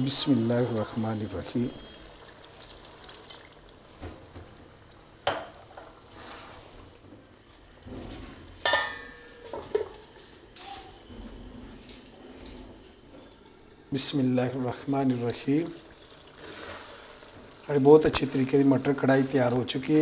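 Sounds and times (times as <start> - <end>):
metal lid clanging on pan: 8.6 - 9.9.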